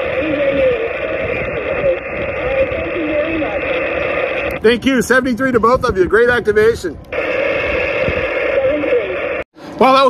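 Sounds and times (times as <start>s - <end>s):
radio receiver hiss: 0.0s - 5.0s, 7.0s - 9.8s.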